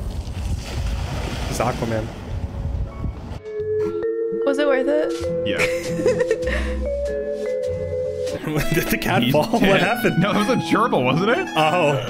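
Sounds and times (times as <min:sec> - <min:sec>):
wind rumbling on microphone: 0:00.0 - 0:03.4
held music notes: 0:02.8 - 0:12.0.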